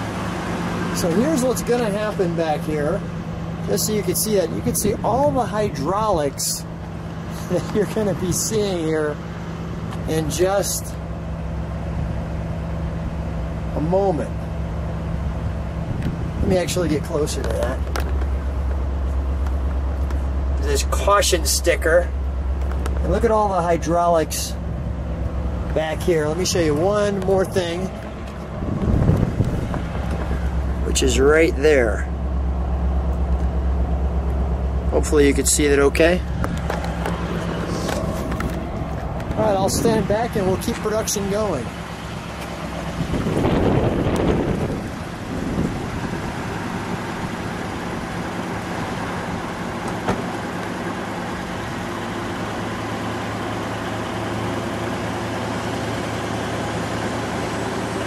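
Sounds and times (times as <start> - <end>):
car engine idling: 0.0 - 58.0.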